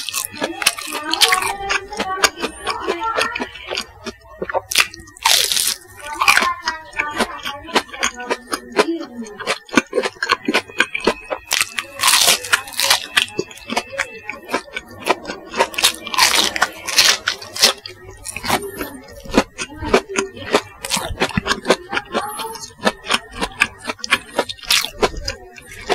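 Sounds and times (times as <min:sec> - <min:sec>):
crunchy chewing: 0:00.0 - 0:25.9.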